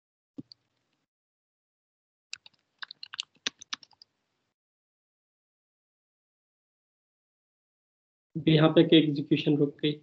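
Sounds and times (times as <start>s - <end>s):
keyboard typing: 2.4s - 4.1s.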